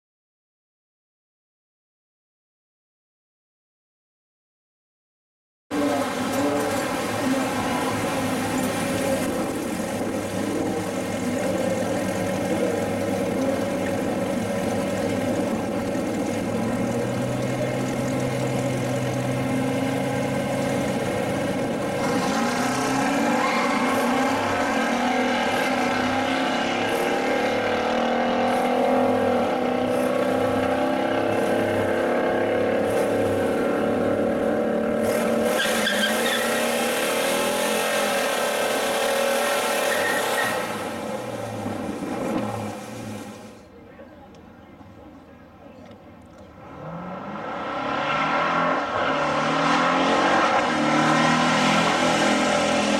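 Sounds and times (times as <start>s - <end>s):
car engine idling and revving: 5.7s - 43.7s, 45.8s - 52.9s
tires squealing: 15.8s - 43.4s, 46.6s - 52.9s.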